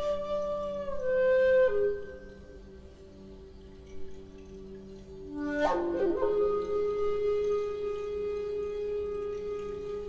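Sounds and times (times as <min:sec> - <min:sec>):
wooden flute holding note: 0:00.0 - 0:02.6.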